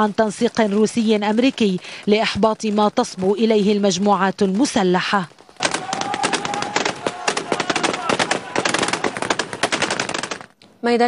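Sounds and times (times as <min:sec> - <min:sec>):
rapid automatic gunfire: 0:05.6 - 0:10.6.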